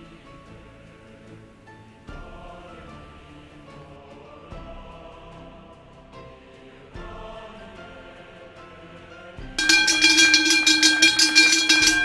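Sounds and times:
soft background music: 0.0 - 12.0
cowbell shaken hard: 9.6 - 12.0.

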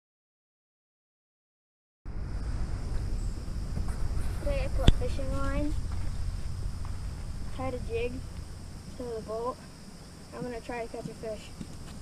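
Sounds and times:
steady low rumble: 2.1 - 12.0
person speaking: 4.4 - 5.8, 7.5 - 8.2, 8.9 - 9.6, 10.3 - 11.7.

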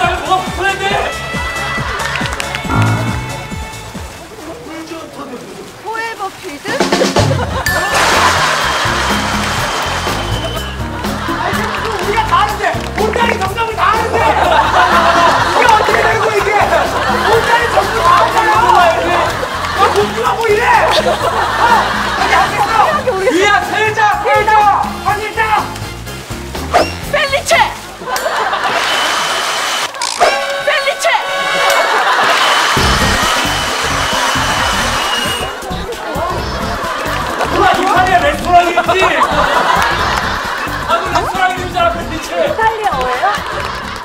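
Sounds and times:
background music with bass: 0.0 - 4.4, 6.9 - 28.6, 32.8 - 44.0
water cannon jets spraying: 1.2 - 24.3, 24.9 - 41.3
water cannon spraying hiss: 7.8 - 10.8, 28.6 - 30.0, 32.0 - 35.7
voices: 10.0 - 25.8, 30.3 - 44.0.

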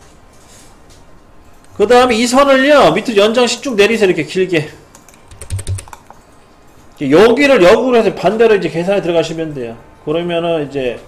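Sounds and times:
computer keyboard keys clicking: 4.9 - 6.2.

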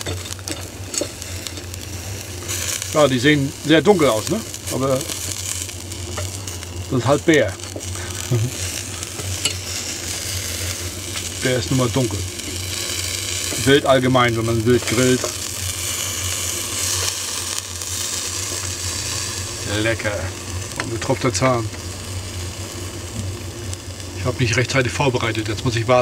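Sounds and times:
meat sizzling on a grill: 0.0 - 26.0
steady low hum: 0.0 - 26.0.

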